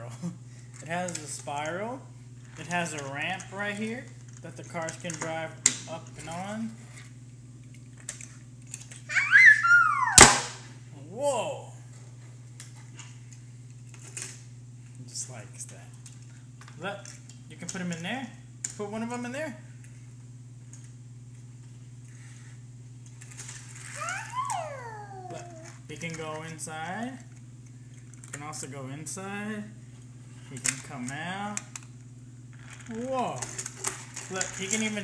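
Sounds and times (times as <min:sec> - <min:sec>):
young child squealing: 0:09.1 - 0:10.4, 0:23.9 - 0:25.7.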